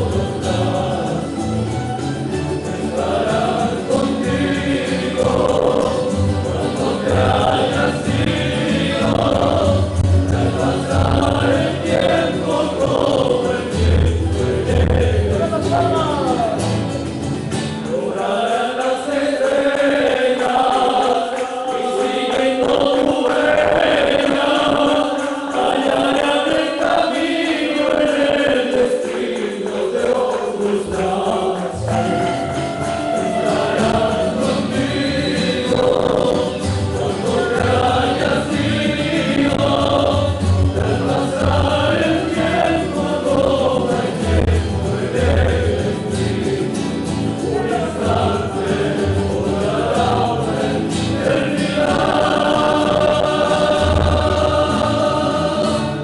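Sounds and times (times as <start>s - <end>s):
male chorus singing: 0.0s - 17.0s, 17.6s - 56.0s
plucked string instruments: 0.0s - 56.0s
strummed guitars: 0.0s - 56.0s.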